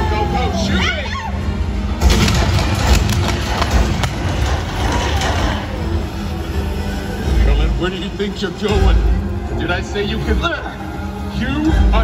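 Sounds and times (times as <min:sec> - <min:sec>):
deep boom: 0:02.0 - 0:05.5
sudden bang: 0:02.0 - 0:05.6
sharp cracks: 0:02.0 - 0:05.9.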